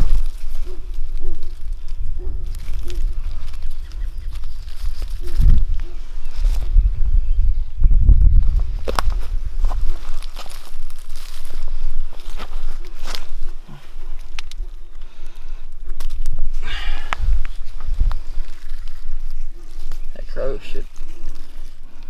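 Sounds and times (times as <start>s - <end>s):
dry leaves rustling and crackling: 0.0s - 6.8s, 8.8s - 14.9s, 15.8s - 22.0s
low wind rumble: 0.0s - 22.0s.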